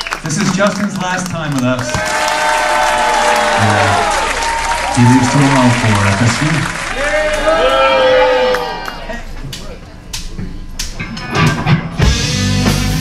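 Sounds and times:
audience applause: 0:00.0 - 0:09.3
low bass notes: 0:10.6 - 0:13.0
electric guitars bending notes: 0:10.9 - 0:13.0.

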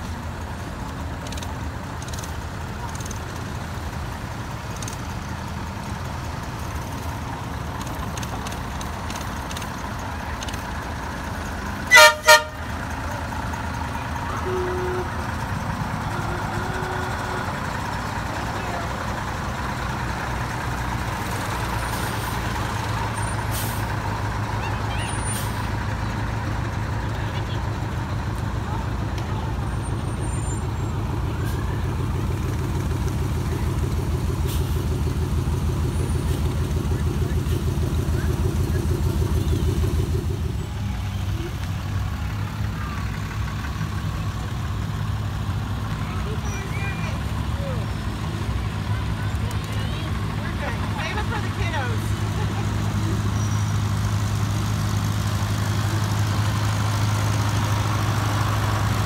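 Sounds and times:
vehicle engines rumbling: 0:00.0 - 0:59.0
truck horn honking: 0:11.8 - 0:13.3, 0:14.3 - 0:18.0.

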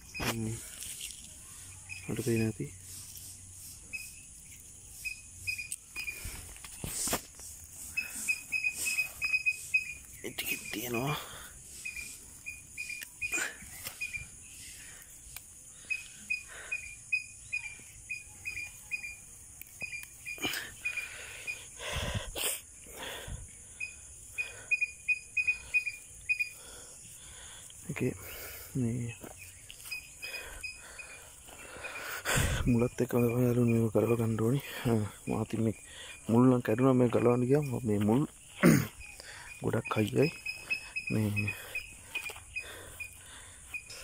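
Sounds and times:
hands rustling plant stems: 0:00.0 - 0:15.6
high insect drone: 0:00.0 - 0:44.0
quick high chirps: 0:01.7 - 0:15.1, 0:38.5 - 0:44.0.

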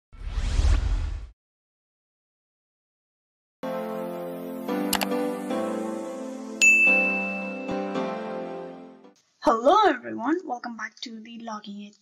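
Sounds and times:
rising swish: 0:00.1 - 0:01.3.

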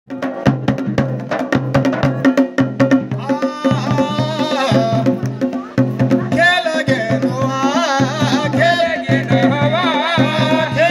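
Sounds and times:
drums in a driving rhythm: 0:00.1 - 0:10.9
man singing: 0:03.1 - 0:05.5, 0:06.2 - 0:10.9.

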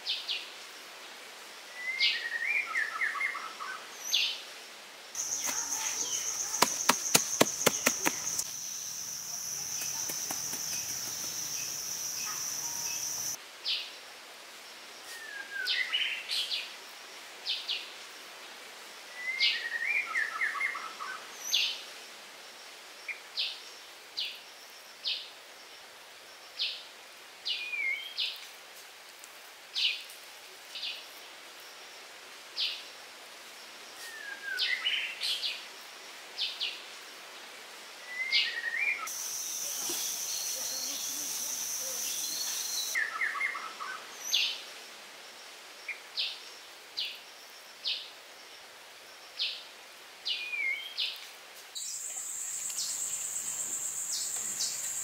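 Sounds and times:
birds chirping: 0:05.2 - 0:13.4, 0:51.8 - 0:55.0
high insect drone: 0:05.2 - 0:13.4, 0:39.1 - 0:43.0, 0:51.8 - 0:55.0.

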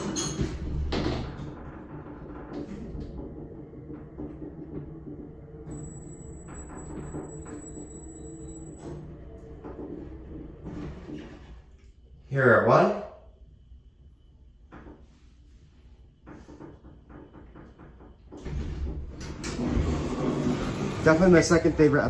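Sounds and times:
elevator doors sliding shut: 0:00.0 - 0:11.8, 0:16.4 - 0:22.0
low hum: 0:00.7 - 0:12.3
thin high whine: 0:05.6 - 0:11.4.

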